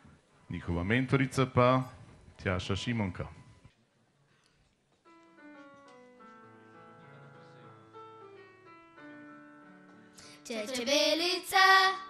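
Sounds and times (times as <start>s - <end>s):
keyboard playing piano chords: 5.0s - 12.0s.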